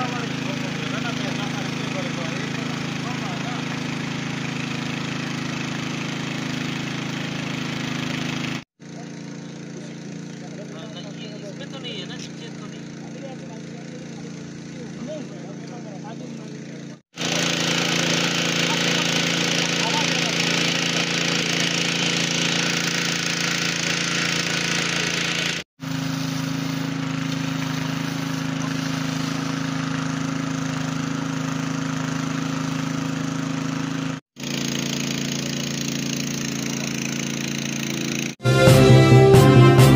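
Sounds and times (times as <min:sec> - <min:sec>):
fire hose spraying water: 0:00.0 - 0:38.4
engine drone: 0:00.0 - 0:39.9
music sting: 0:38.4 - 0:39.9.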